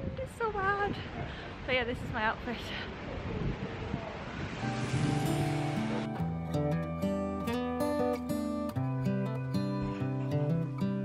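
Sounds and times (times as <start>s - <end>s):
wind rushing over microphone: 0.0s - 6.2s
background music melody: 4.6s - 11.0s.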